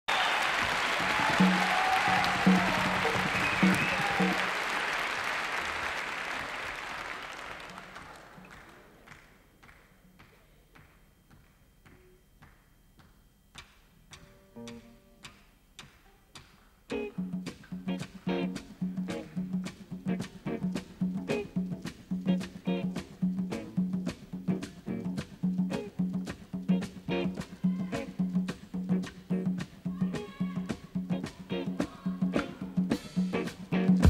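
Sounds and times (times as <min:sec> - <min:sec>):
audience applause: 0:00.1 - 0:09.8
hand claps keeping tempo: 0:00.1 - 0:34.0
band playing rhythmic groove: 0:00.6 - 0:05.4, 0:14.1 - 0:34.0.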